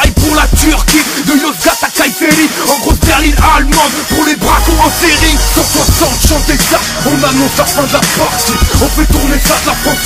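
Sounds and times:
man rapping over a beat: 0.0s - 10.0s.

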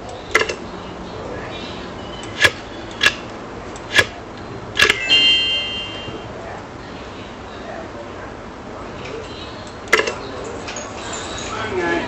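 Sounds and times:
sharp clicks: 2.2s - 4.2s, 4.8s - 5.0s
ringing ding: 4.8s - 6.3s.

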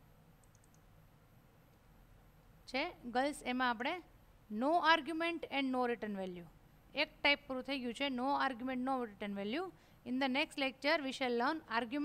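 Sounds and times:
faint computer mouse clicks: 0.4s - 0.9s.

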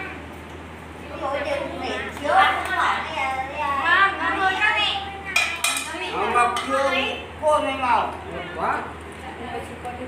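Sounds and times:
voices: 0.0s - 10.0s.

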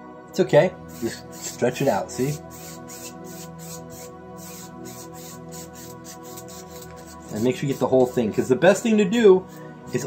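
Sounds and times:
soft background music: 0.0s - 10.0s
paintbrush rubbing on canvas: 0.9s - 8.6s, 9.4s - 10.0s.

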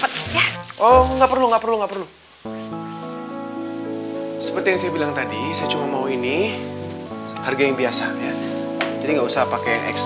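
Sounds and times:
soft hiss: 0.0s - 9.3s
synth chords: 0.3s - 1.9s.

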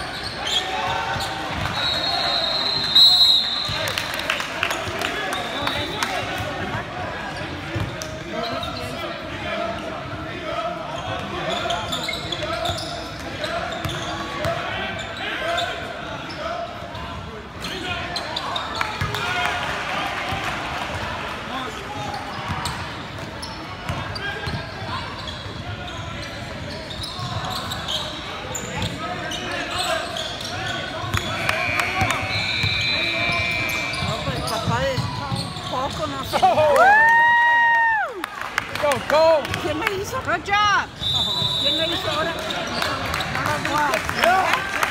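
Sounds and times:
sneakers squeaking: 0.0s - 4.0s, 4.6s - 9.3s, 10.9s - 19.3s, 22.0s - 36.6s, 39.6s - 44.3s
people talking and calling out: 23.4s - 44.9s.

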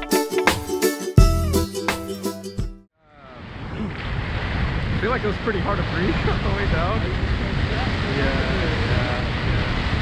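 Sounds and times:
wind rushing over microphone: 3.3s - 10.0s.

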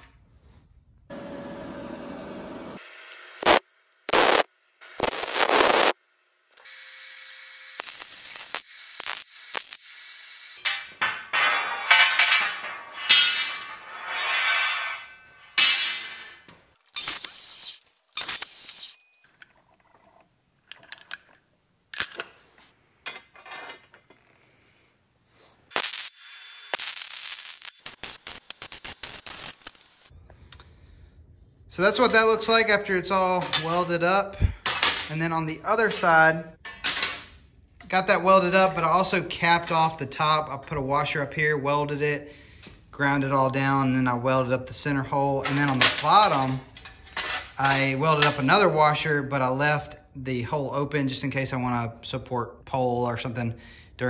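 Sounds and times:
welding crackle: 3.4s - 10.6s, 16.8s - 18.9s, 25.7s - 30.1s
metal pieces clinking: 10.6s - 22.4s.

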